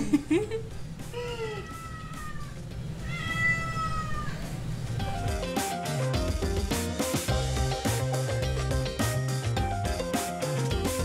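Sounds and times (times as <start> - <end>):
cat meowing: 1.3 - 4.7
background music: 5.0 - 11.0.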